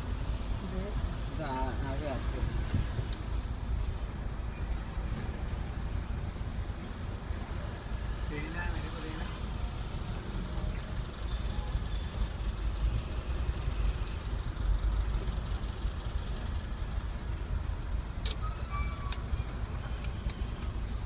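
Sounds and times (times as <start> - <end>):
traffic: 0.0 - 21.0
car engine idling: 5.6 - 18.4.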